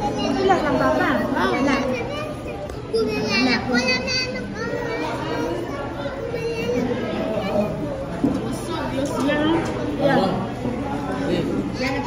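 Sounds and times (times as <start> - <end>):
high-pitched children's voices: 0.0 - 9.2
background chatter: 0.0 - 12.0
people talking at a table: 0.0 - 12.0.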